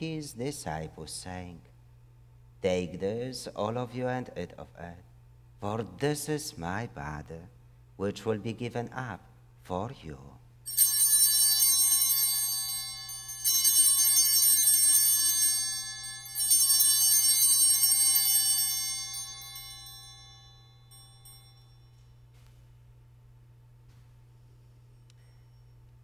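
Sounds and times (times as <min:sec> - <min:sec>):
altar bells jingling: 0:10.7 - 0:22.2.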